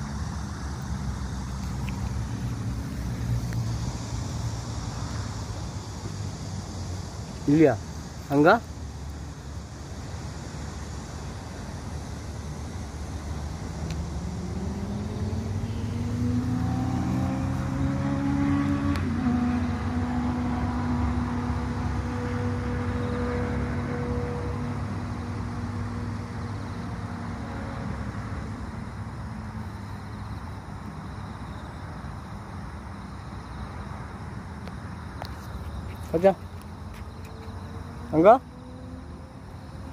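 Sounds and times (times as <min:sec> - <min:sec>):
distant passing vehicle engine: 0:13.0 - 0:30.2, 0:36.1 - 0:39.9.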